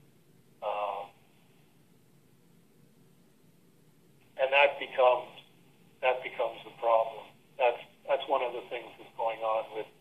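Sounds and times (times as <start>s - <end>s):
person talking over telephone: 0.6s - 1.2s, 4.4s - 5.4s, 6.0s - 10.0s.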